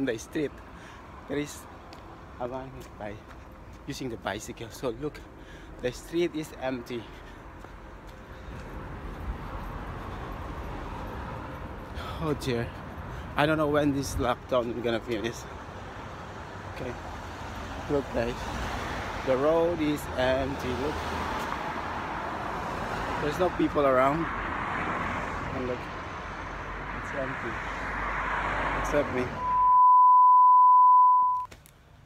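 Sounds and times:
road traffic noise: 0:00.0 - 0:32.0.

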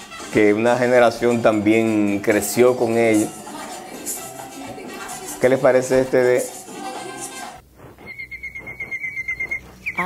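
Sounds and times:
rapid high bird trill: 0:08.0 - 0:10.0.

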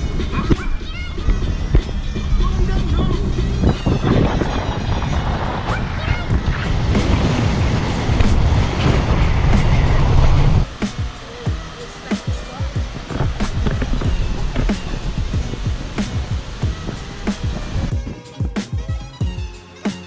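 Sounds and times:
music with steady drum beat: 0:00.0 - 0:05.0, 0:06.8 - 0:10.0, 0:10.6 - 0:20.0
car driving rumble: 0:00.0 - 0:18.2.

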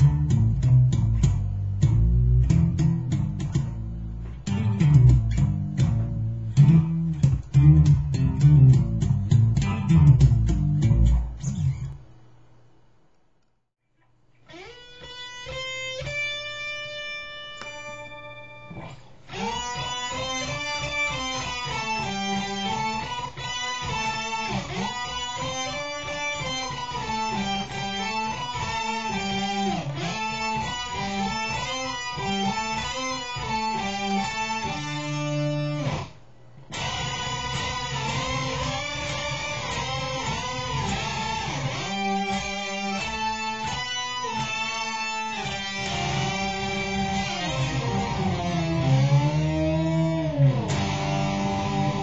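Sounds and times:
electric guitar with octave effect: 0:00.0 - 0:12.1, 0:14.0 - 0:52.0.

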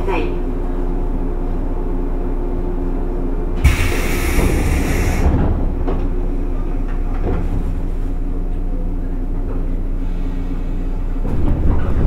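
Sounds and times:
electric train humming: 0:00.0 - 0:11.3
hiss of released air: 0:03.6 - 0:05.4
train doors closing with a thud: 0:03.6 - 0:08.2.

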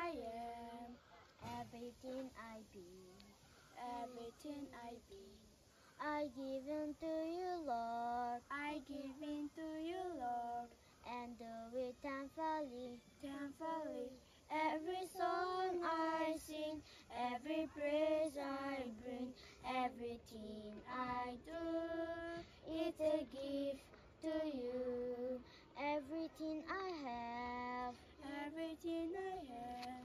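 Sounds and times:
girls singing worship song: 0:00.0 - 0:30.0.

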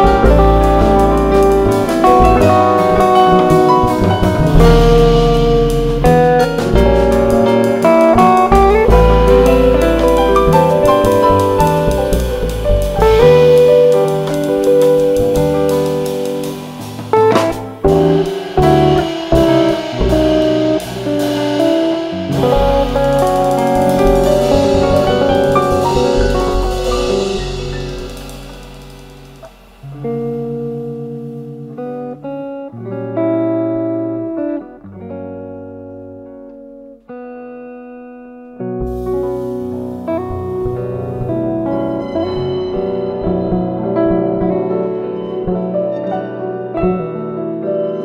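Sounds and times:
drum kit with cymbals: 0:00.0 - 0:32.0, 0:38.8 - 0:45.9
double bass: 0:00.0 - 0:32.2, 0:38.8 - 0:48.0
jazz quartet playing: 0:00.0 - 0:32.4, 0:38.7 - 0:48.0
electric guitar chords: 0:00.0 - 0:48.0.

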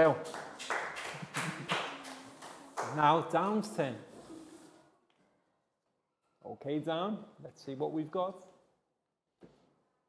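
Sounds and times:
children clapping: 0:00.0 - 0:03.6.

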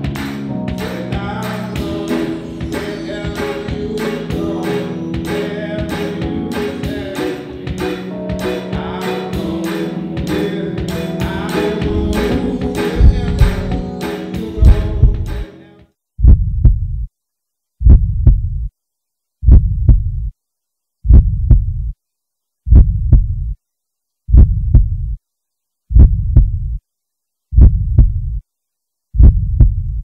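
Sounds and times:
deep double thud heartbeat: 0:13.0 - 0:13.9, 0:14.6 - 0:15.3, 0:16.2 - 0:17.1, 0:17.8 - 0:18.7, 0:19.4 - 0:20.3, 0:21.1 - 0:21.9, 0:22.7 - 0:23.6, 0:24.3 - 0:25.2, 0:25.9 - 0:26.8, 0:27.5 - 0:28.4, 0:29.2 - 0:30.0.

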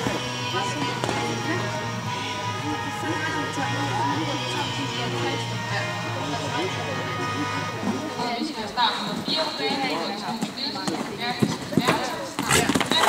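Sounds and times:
music: 0:00.0 - 0:10.7
background voices: 0:00.0 - 0:13.0
horse hoofbeats: 0:07.2 - 0:13.0.

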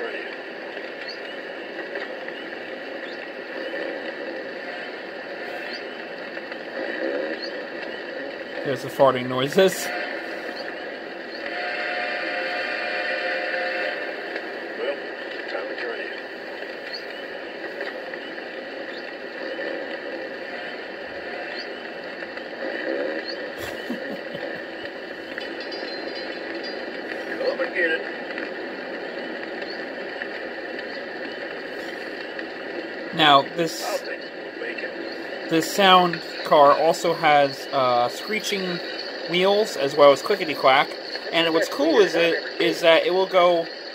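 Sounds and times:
work-site noise: 0:00.0 - 0:43.9
men talking: 0:08.6 - 0:10.0, 0:14.8 - 0:16.2, 0:27.3 - 0:28.1, 0:33.2 - 0:43.7.

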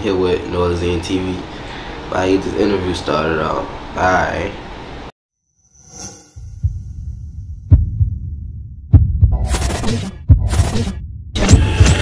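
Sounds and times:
deep bass thumps: 0:06.5 - 0:11.4
glitch noise bursts: 0:09.4 - 0:12.0.

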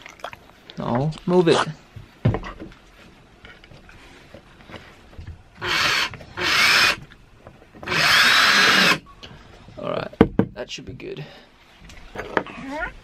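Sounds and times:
power drill driving screws: 0:05.6 - 0:07.0, 0:07.8 - 0:09.0.

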